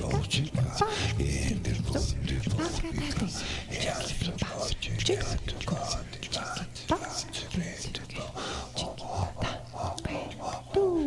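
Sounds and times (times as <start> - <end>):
breathy whispered vocal sounds: 0.0 - 11.0
steady low hum: 0.0 - 11.0.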